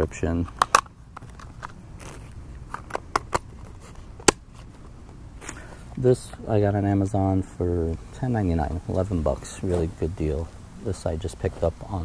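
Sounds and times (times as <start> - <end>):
hard plastic case clicking: 0.5 - 4.4.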